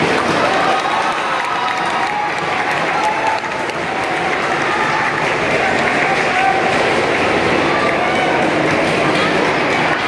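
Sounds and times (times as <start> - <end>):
audience applauding: 0.0 - 10.0
faint voices: 0.0 - 10.0.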